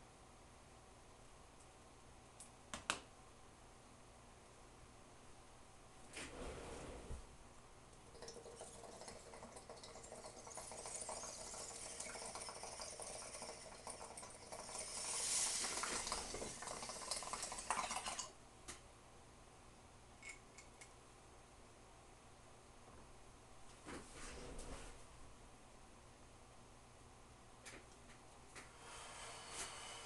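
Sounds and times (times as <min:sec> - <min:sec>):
water bubbling in a bong: 0:08.1 - 0:18.3.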